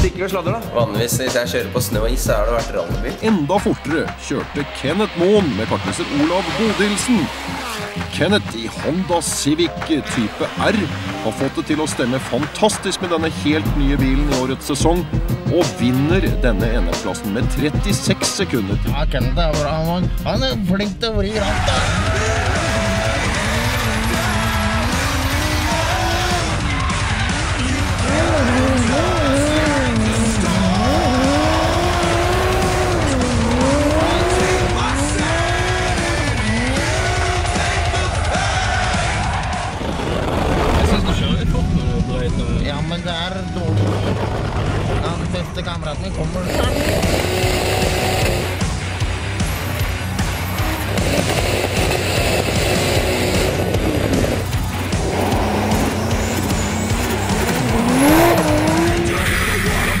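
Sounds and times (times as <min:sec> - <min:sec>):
music with a steady beat: 0:00.0 - 0:40.7, 0:46.4 - 1:00.0
car engine revving: 0:00.0 - 1:00.0
tyre squeal: 0:49.4 - 1:00.0.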